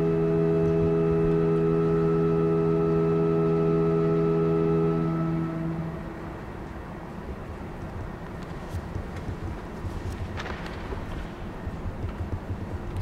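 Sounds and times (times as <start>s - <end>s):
organ sustained chord: 0.0s - 10.3s.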